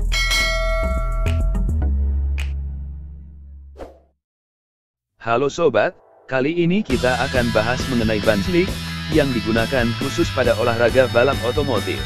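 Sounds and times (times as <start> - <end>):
bell chime: 0.0 - 1.6.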